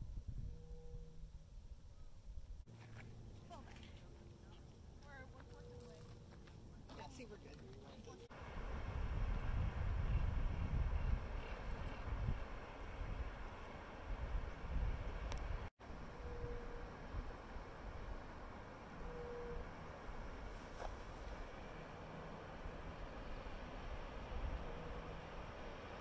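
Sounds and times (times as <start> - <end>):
wind buffeting microphone: 8.5 - 15.7.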